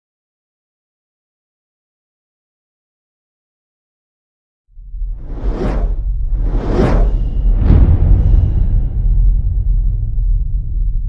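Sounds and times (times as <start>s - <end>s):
deep rumble: 4.8s - 11.0s
whooshes: 5.0s - 10.7s.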